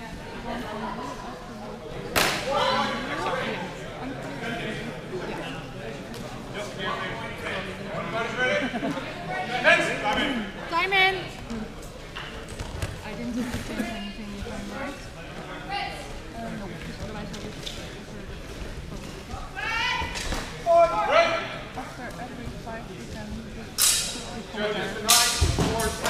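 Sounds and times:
voices echoing in a hall: 0:00.0 - 0:26.0.

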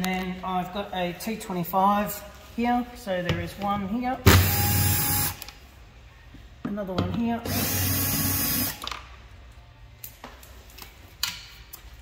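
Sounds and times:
cordless drill running: 0:04.4 - 0:05.4.

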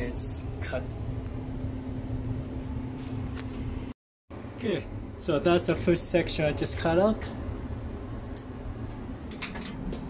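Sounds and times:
low hum with faint tone: 0:00.0 - 0:10.0.

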